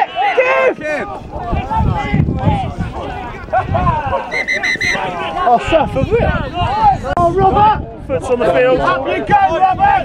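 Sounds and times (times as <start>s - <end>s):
spectators shouting: 0.0s - 7.6s
high whistle pips: 4.3s - 5.0s.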